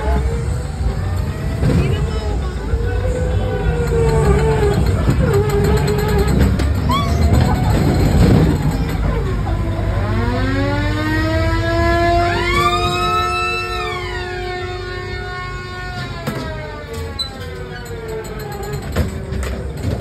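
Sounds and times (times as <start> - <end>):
siren-like wailing: 0.0 - 19.3.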